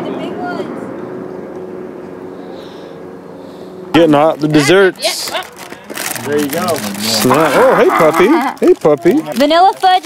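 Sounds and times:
distant motor humming: 0.0s - 8.4s.

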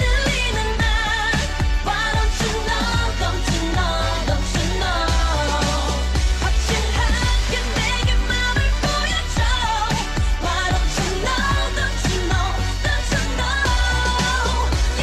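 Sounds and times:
pop song with vocals and beat: 0.0s - 15.0s.

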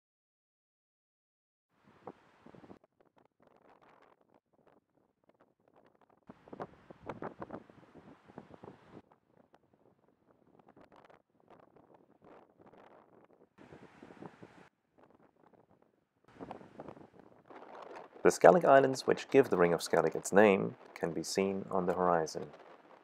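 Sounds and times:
wind gusting against microphone: 6.3s - 9.0s, 9.8s - 23.0s.

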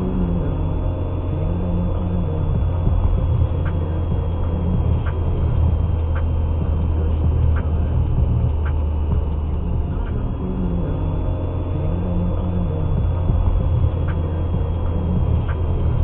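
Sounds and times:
car engine and tyres rumbling: 0.0s - 16.0s.

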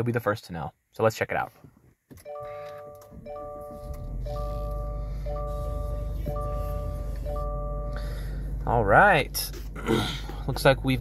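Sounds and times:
car engine starting and idling: 2.2s - 11.0s
multi-note warning chime: 2.3s - 8.0s.

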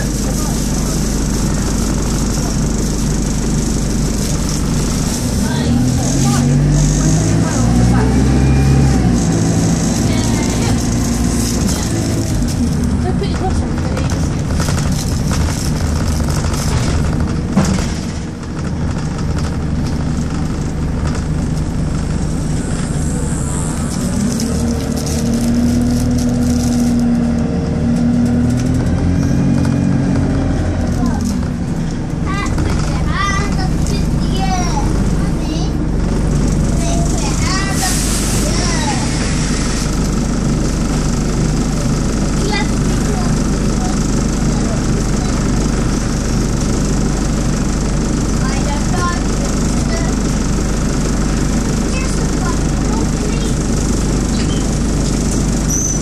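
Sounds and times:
diesel bus engine: 0.0s - 56.0s.

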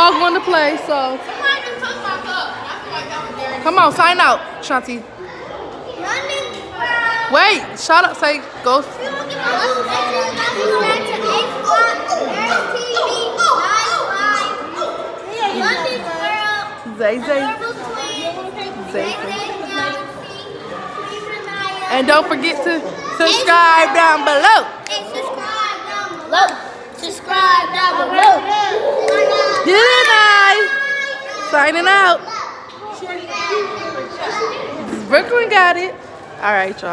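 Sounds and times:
children chattering and calling out: 0.0s - 36.9s.

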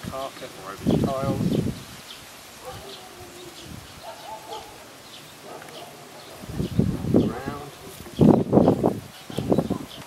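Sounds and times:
birds chirping: 0.1s - 10.0s
man speaking: 7.2s - 8.3s.

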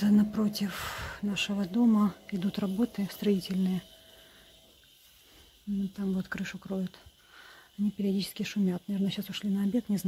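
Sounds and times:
woman speaking: 0.0s - 4.0s, 5.7s - 7.1s, 7.8s - 10.0s
faint background hum: 0.0s - 10.0s.

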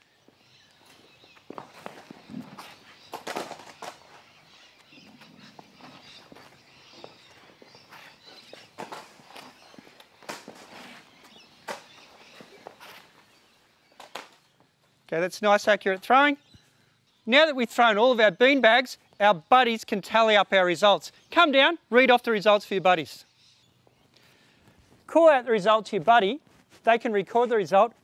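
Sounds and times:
bean bags landing on concrete: 1.6s - 4.2s, 8.5s - 10.8s.

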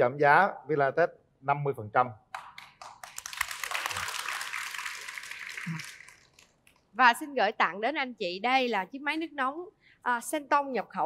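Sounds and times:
audience applauding: 2.4s - 6.5s.

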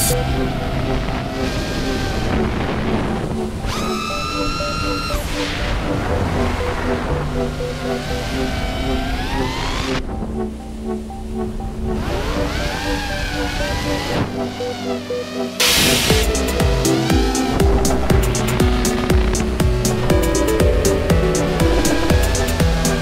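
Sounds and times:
electronic music with synths: 0.0s - 23.0s.

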